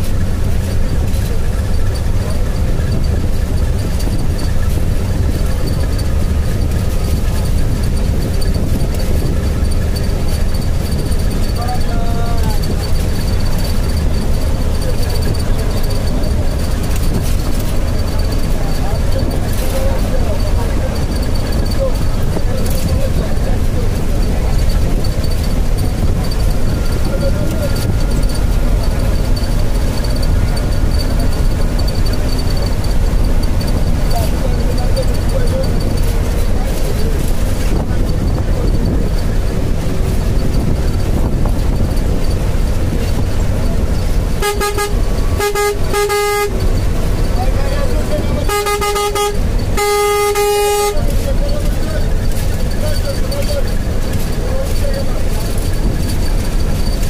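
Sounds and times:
vehicle engine and tyre rumble: 0.0s - 57.0s
vehicle horn toots and blasts: 44.4s - 51.6s.

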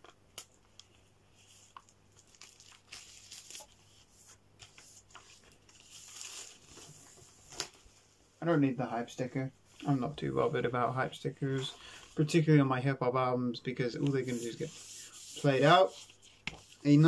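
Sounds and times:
paper and plastic packaging rustling: 0.8s - 8.0s.

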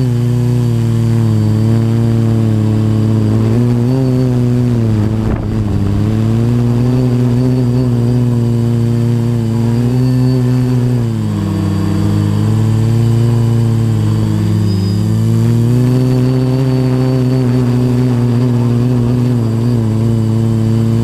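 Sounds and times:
quadcopter propellers buzzing: 0.0s - 21.0s.

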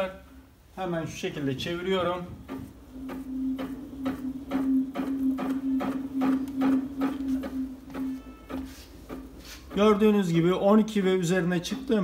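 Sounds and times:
steady hum: 0.0s - 12.0s
rotor spun by hand: 1.9s - 10.1s.

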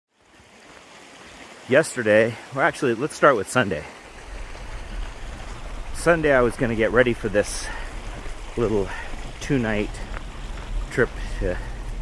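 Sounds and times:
vehicle driving on gravel: 4.1s - 12.0s.

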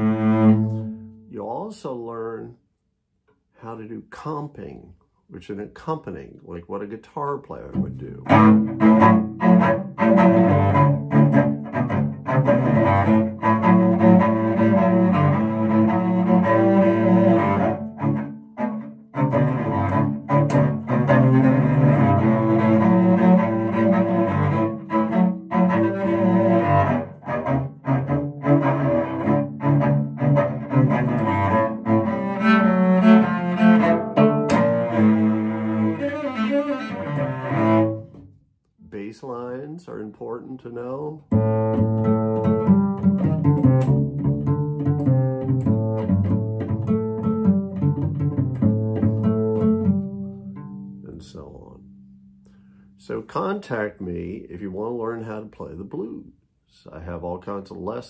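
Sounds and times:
cello playing chords: 0.0s - 2.4s, 7.5s - 53.3s.

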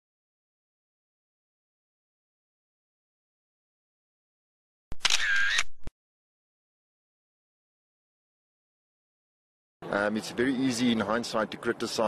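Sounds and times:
camera shutter with whirring wind: 4.9s - 5.9s.

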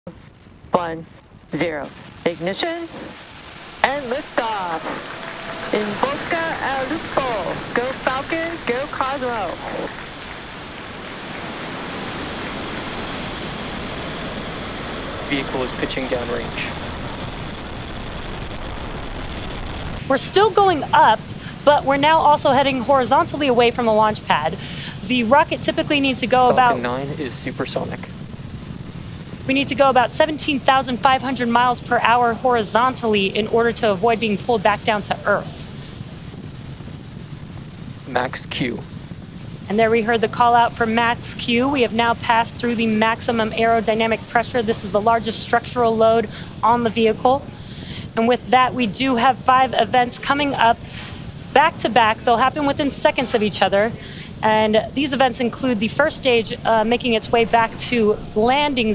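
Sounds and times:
rocket engines rushing roar: 0.2s - 58.9s.

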